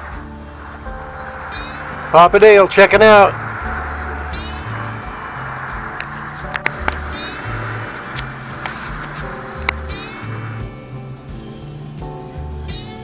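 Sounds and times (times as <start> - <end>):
heavy rain hissing: 0.0 - 11.8
background music with bass line: 0.0 - 13.0.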